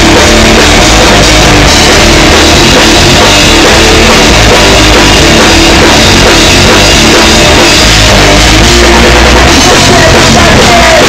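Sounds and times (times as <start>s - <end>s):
distorted electric guitar: 0.0s - 11.0s
drum kit: 0.0s - 11.0s
punk rock band playing: 0.0s - 11.0s.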